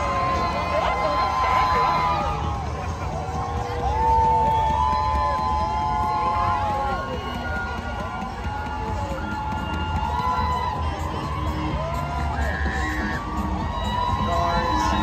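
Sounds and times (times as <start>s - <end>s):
crowd cheering and shouting: 0.0s - 15.0s.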